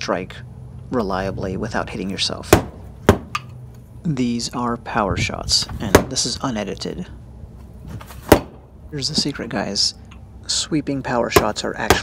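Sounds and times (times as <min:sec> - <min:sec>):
stick smacking punching bag: 0:02.5 - 0:03.5, 0:08.2 - 0:08.6, 0:11.3 - 0:12.0.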